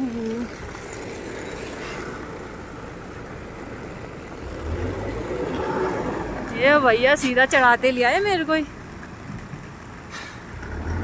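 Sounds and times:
truck engine rumbling: 0.0 - 11.0.

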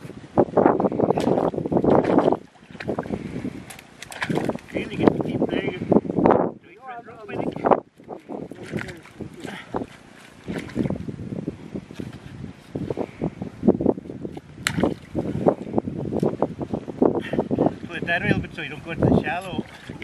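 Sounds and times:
water splashing: 0.9 - 5.5, 7.2 - 11.2, 14.3 - 16.3, 19.3 - 20.0
axe chopping into wet log: 14.6 - 15.0.

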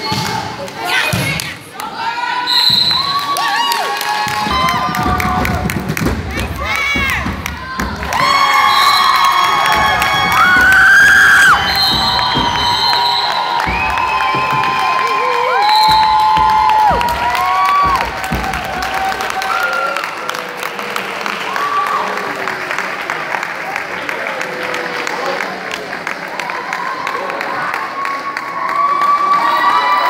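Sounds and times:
crowd screaming and cheering: 2.0 - 30.0.

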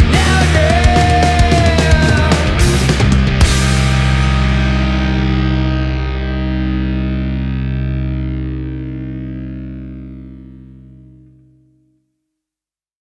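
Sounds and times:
distorted electric guitar chord ringing: 0.0 - 11.9.

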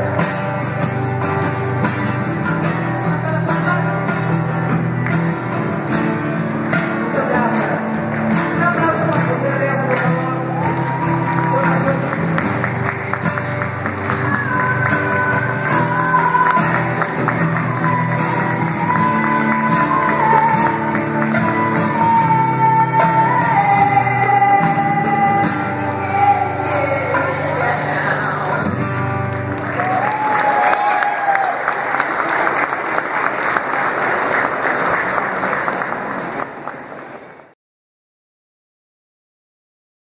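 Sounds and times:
guitar: 0.0 - 37.2
person singing: 13.8 - 29.2.

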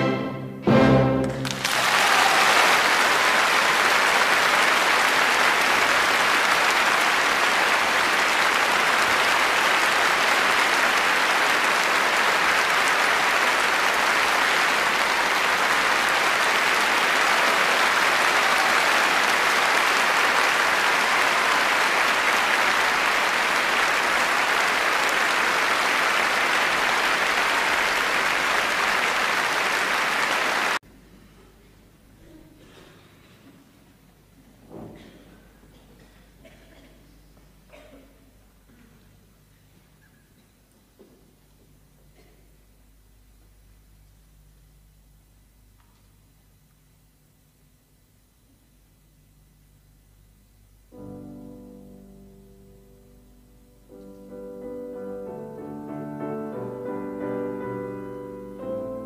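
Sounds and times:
audience applauding: 1.2 - 30.8.

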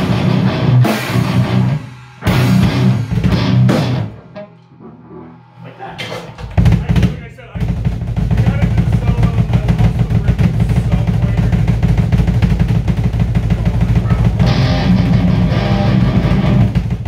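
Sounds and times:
rock band playing: 0.0 - 17.0.

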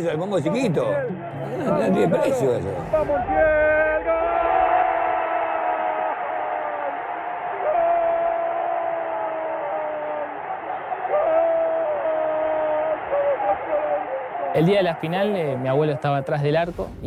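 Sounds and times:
noise of large crowd: 0.0 - 17.0.

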